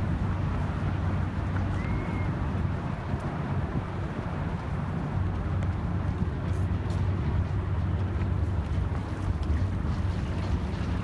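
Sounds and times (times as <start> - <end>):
harbourside background rumble: 0.0 - 11.0
wind on microphone: 0.0 - 11.0.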